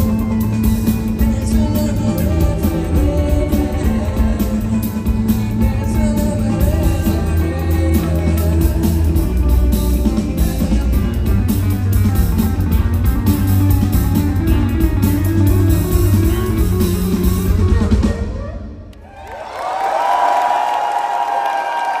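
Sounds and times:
live rock band playing: 0.0s - 18.5s
crowd cheering and shouting: 17.8s - 22.0s.

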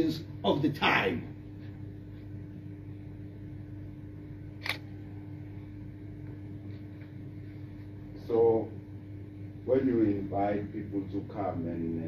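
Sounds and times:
low room hum: 0.0s - 12.0s
sharp click: 4.6s - 4.9s.

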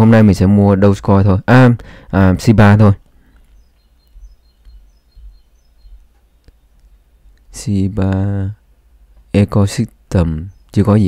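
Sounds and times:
low steady hum: 0.0s - 11.0s
faint high-pitched chirps: 3.1s - 7.7s.

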